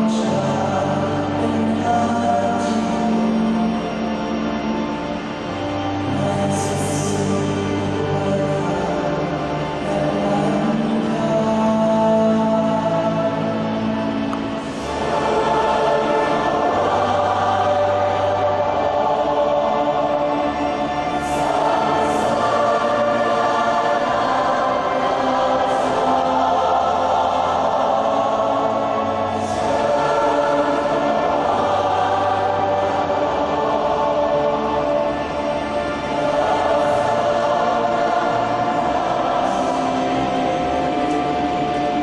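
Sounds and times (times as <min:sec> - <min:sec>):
choir singing a hymn: 0:00.0 - 0:42.0.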